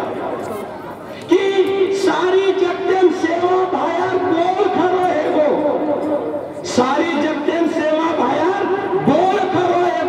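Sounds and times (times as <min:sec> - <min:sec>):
man speaking through loudspeaker: 0:00.0 - 0:10.0.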